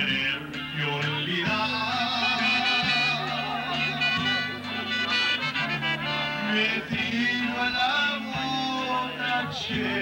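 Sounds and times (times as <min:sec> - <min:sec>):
bass line: 0:00.0 - 0:10.0
guitars: 0:00.0 - 0:10.0
live band playing upbeat song: 0:00.0 - 0:10.0
bending melody line: 0:01.6 - 0:07.7.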